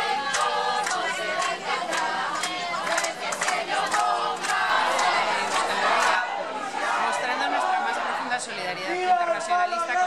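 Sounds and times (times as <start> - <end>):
crowd shouting together: 0.0 - 10.0.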